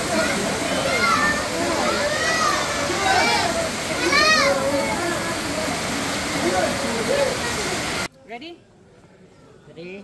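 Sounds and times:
people shouting and calling: 0:00.0 - 0:08.0
heavy rain pouring: 0:00.0 - 0:08.1
water streaming onto concrete: 0:00.0 - 0:08.1.

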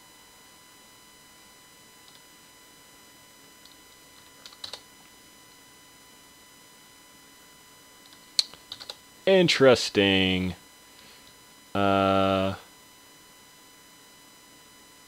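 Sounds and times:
faint electrical hum: 0:00.0 - 0:15.0
computer keyboard keystrokes: 0:03.6 - 0:04.8, 0:08.1 - 0:09.0.

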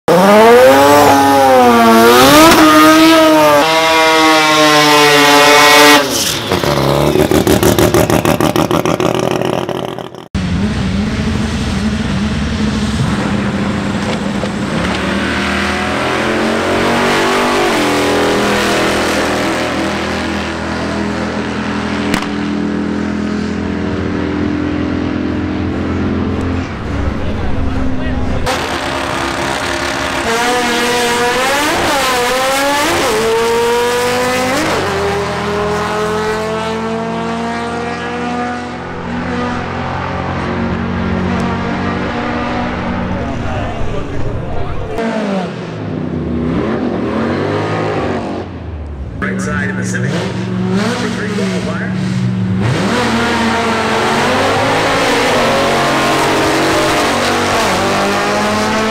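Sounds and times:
drag racing engines at full throttle: 0:00.0 - 0:58.9.

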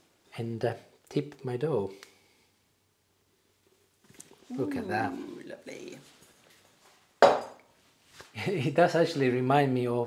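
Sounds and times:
glass bowl knocking on stone: 0:07.2 - 0:07.6.

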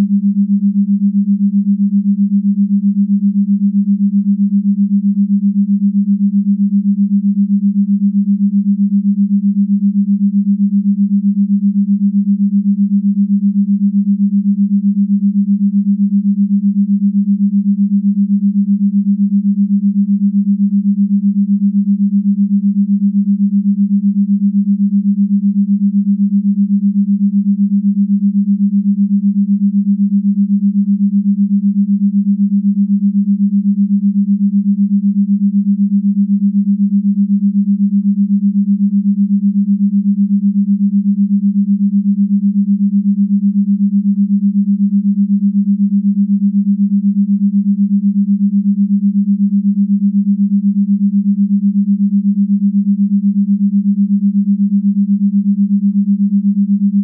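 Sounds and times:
low wavering pure tone: 0:00.0 - 0:57.0.

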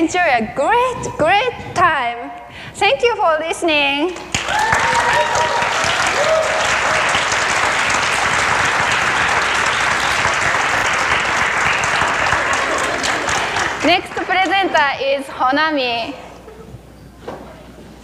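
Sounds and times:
audience applauding: 0:04.2 - 0:14.8.

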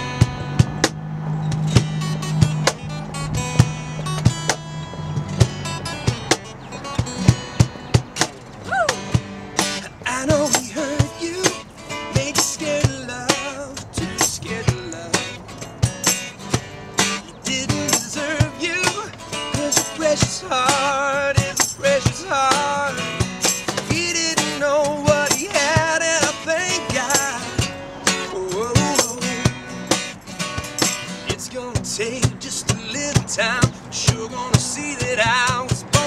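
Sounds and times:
acoustic guitars strumming: 0:00.0 - 0:36.0
cajon beat: 0:00.0 - 0:36.0
man singing: 0:09.8 - 0:15.4, 0:17.2 - 0:30.0, 0:31.2 - 0:36.0.

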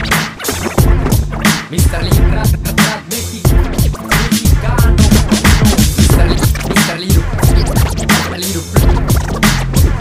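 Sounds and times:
hip hop drum beat: 0:00.0 - 0:10.0
turntable scratching: 0:00.0 - 0:10.0.

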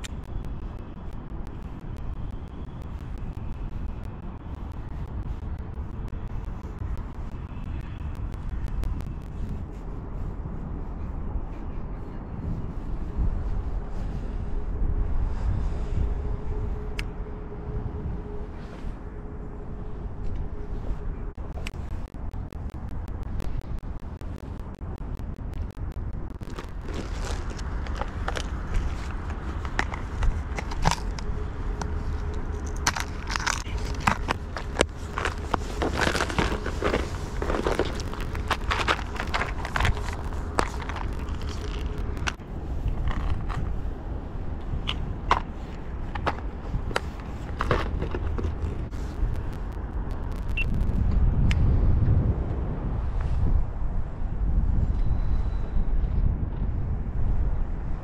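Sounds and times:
wind rumbling on microphone: 0:00.0 - 0:58.0.

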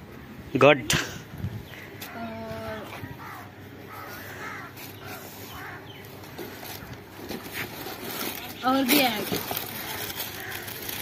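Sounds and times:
bird calling: 0:01.7 - 0:07.0.

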